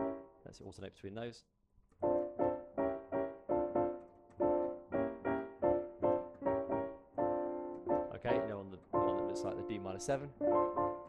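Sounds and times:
piano block chords: 0.0s - 0.4s, 2.0s - 11.0s.

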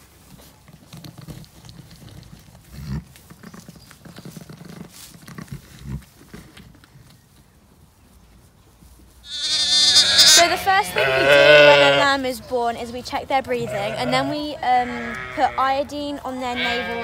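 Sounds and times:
rustling of straw bedding: 0.0s - 12.9s
sheep giving low short calls: 9.3s - 12.1s.

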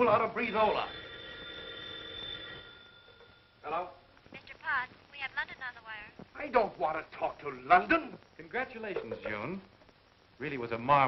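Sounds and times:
telephone bell ringing: 0.4s - 3.6s.

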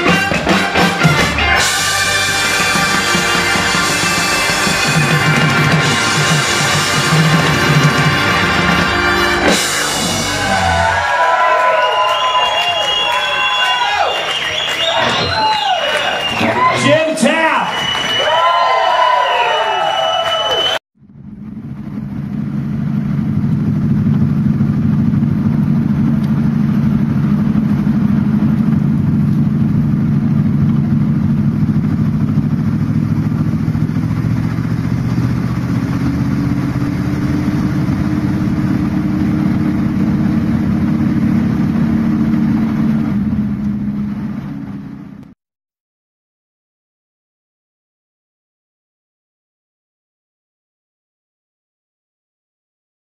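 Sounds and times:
car engine running: 0.0s - 11.2s, 21.0s - 45.3s
live band playing: 0.0s - 11.6s
crowd cheering: 0.0s - 20.8s.

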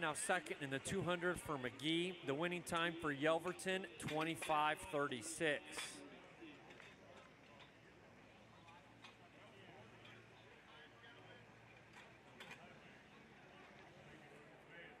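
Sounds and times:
faint background voices: 0.0s - 15.0s.

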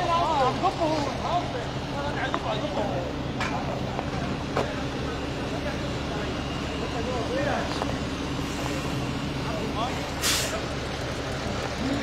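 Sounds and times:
fire engine running: 0.0s - 12.0s
short hiss: 10.2s - 10.6s.

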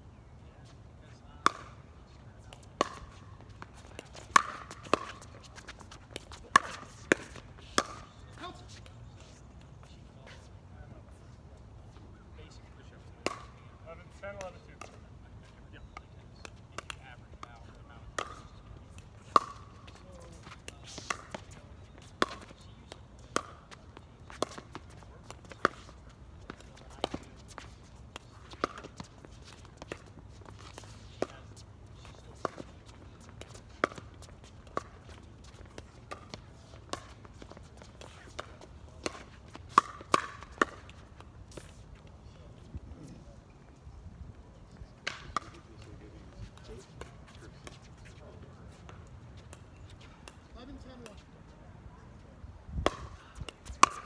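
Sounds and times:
paddles hitting plastic ball: 1.4s - 1.8s, 2.5s - 8.4s, 15.9s - 41.7s, 52.8s - 54.0s.

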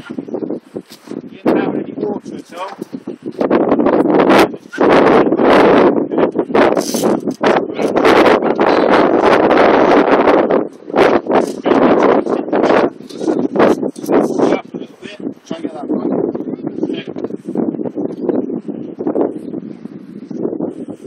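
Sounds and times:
wind buffeting microphone: 0.0s - 21.0s.

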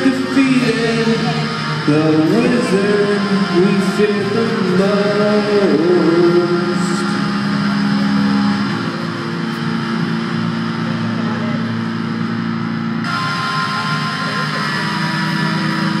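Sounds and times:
distorted electric guitar and bass: 0.0s - 16.0s.

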